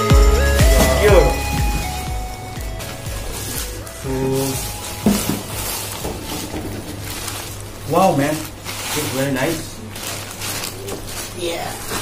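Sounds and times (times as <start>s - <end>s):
electronic background music: 0.0s - 7.4s
plastic and cardboard packaging rustling: 0.4s - 12.0s.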